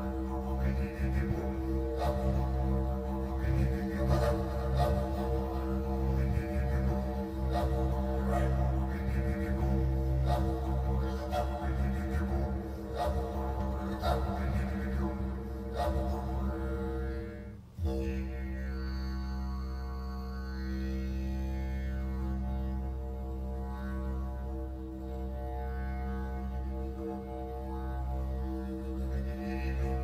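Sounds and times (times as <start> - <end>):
meditative drone music: 0.0 - 30.0.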